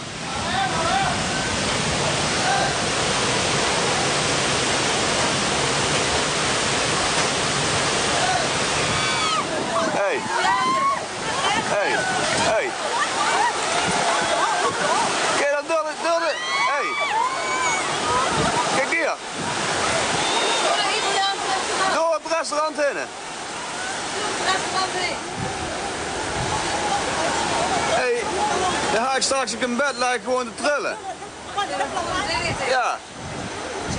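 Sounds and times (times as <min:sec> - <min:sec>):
water surge rushing: 0:00.0 - 0:33.9
people shouting: 0:08.1 - 0:15.4, 0:16.2 - 0:18.7.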